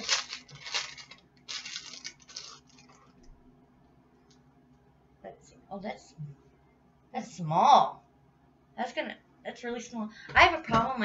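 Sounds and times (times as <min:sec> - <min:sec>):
plastic packet crinkling: 0:00.0 - 0:03.2.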